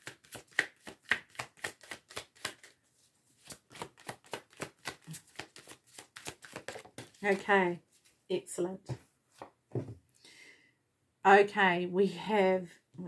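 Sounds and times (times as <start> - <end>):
cards being shuffled by hand: 0.0 - 8.2.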